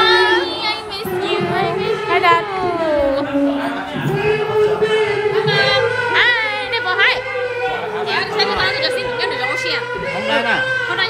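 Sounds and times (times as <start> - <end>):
high voice singing: 0.0 - 8.0.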